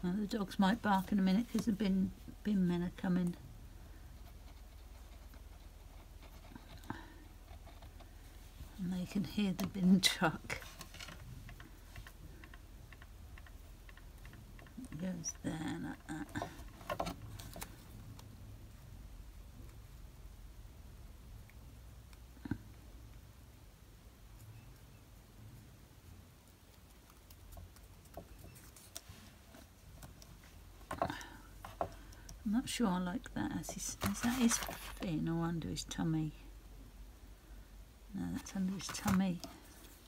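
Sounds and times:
low steady hum: 0:00.0 - 0:40.0
card pieces tapping and rustling: 0:33.7 - 0:35.0, 0:38.7 - 0:39.5.

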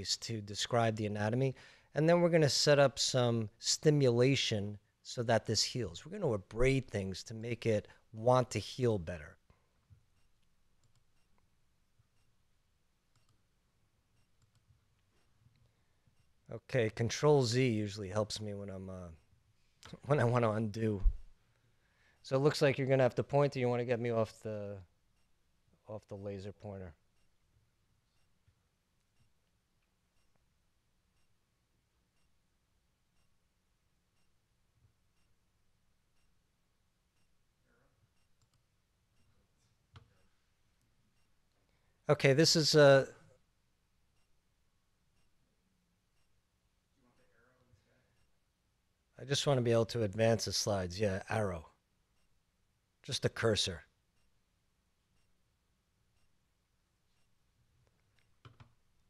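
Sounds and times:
computer mouse clicks: 0:10.2 - 0:11.4, 0:13.1 - 0:13.4, 0:14.2 - 0:14.8, 0:38.2 - 0:39.3, 0:57.8 - 0:58.8.

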